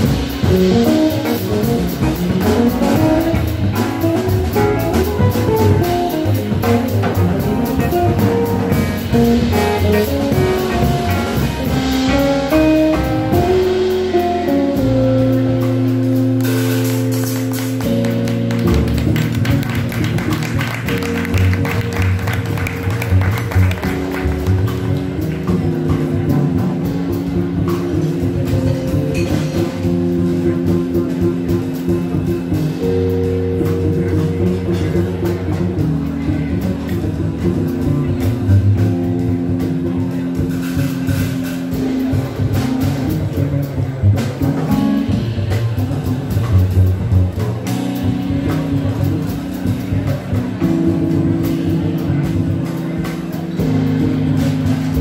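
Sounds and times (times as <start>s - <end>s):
double bass: 0.0s - 55.0s
drum kit: 0.0s - 55.0s.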